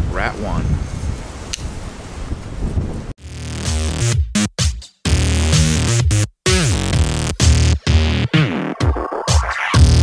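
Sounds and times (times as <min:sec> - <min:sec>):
wind buffeting microphone: 0:00.0 - 0:03.2.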